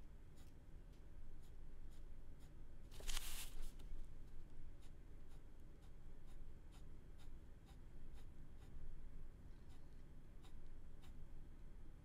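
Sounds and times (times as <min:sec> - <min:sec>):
pen scratching on paper: 0:04.7 - 0:08.8, 0:09.7 - 0:11.2.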